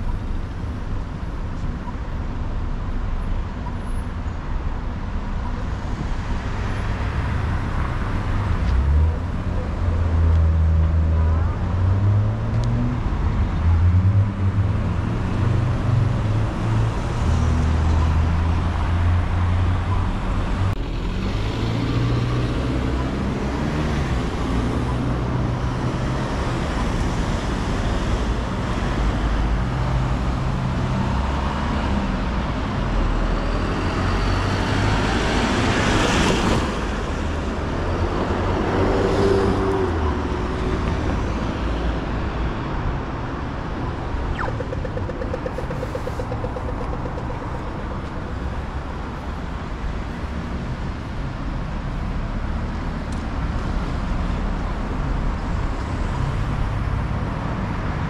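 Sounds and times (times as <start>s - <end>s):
traffic hum: 0.0s - 58.0s.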